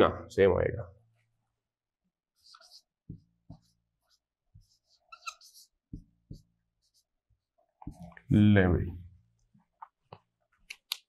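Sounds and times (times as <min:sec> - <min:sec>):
marker scratching on whiteboard: 0:02.3 - 0:08.2
pen tapping whiteboard: 0:04.5 - 0:06.6
marker squeak: 0:04.6 - 0:05.8.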